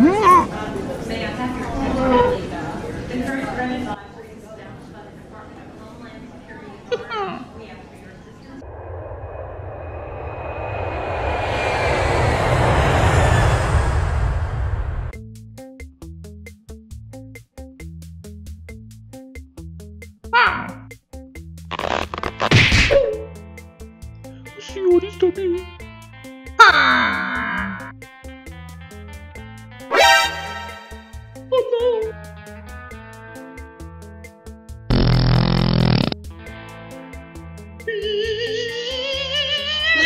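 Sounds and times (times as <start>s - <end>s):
jet airliner rushing rumble: 8.4s - 15.2s
faint whine sliding down: 8.5s - 15.1s
cartoon old man screaming: 20.4s - 20.8s, 26.6s - 27.9s.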